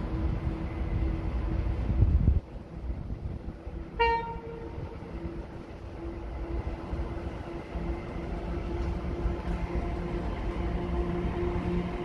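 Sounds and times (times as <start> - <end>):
train horn toot: 3.9 - 5.1.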